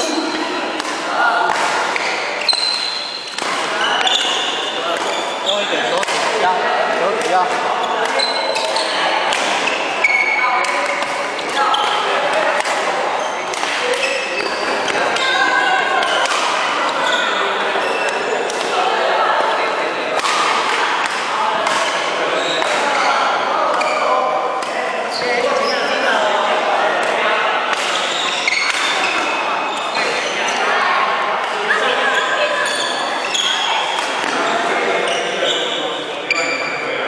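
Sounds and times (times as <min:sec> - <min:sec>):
rackets hitting shuttlecock: 0:00.3 - 0:05.2, 0:05.9 - 0:06.5, 0:07.1 - 0:15.4, 0:16.0 - 0:16.8, 0:18.1 - 0:18.8, 0:20.2 - 0:22.9, 0:27.0 - 0:29.3, 0:33.8 - 0:34.5
shoes squeaking on wooden floor: 0:02.0 - 0:05.9, 0:28.0 - 0:30.3.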